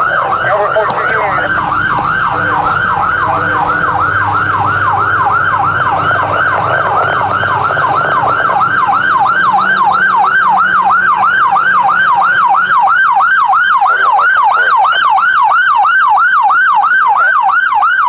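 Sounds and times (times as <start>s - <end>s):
police siren yelp: 0.0s - 18.0s.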